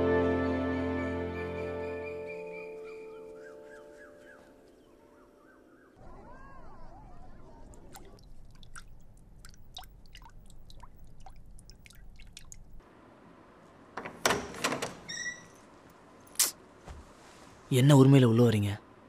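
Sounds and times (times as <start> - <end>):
background music: 0.0 - 5.8
water dripping in fish tank: 7.8 - 12.8.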